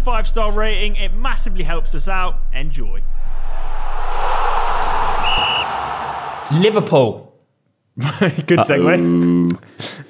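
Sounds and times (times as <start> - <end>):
whoosh sound effect: 3.1 - 6.5.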